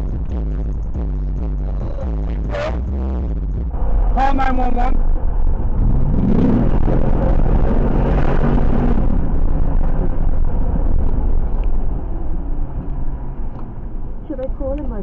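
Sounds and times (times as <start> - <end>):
car engine revving: 0.0 - 15.0
low road rumble: 0.0 - 15.0.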